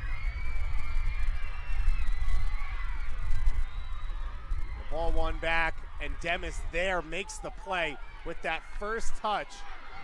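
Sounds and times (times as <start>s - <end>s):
distant crowd voices: 0.7s - 10.0s.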